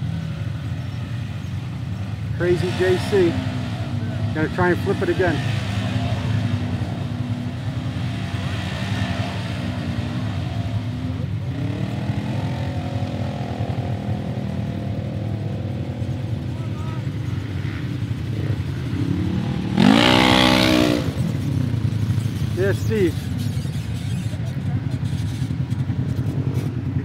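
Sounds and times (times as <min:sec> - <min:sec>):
utility vehicle engines revving: 0:00.0 - 0:27.0.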